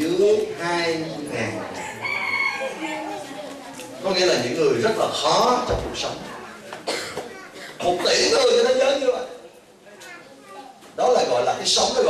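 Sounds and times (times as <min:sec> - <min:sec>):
rooster crowing: 0:01.6 - 0:03.3.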